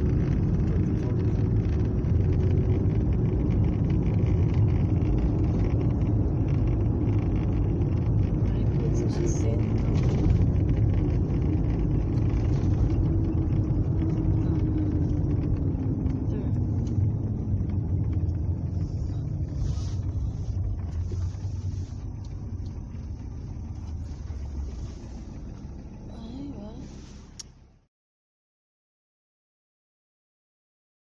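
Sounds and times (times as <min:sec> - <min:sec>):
low steady rumbling: 0:00.0 - 0:27.9.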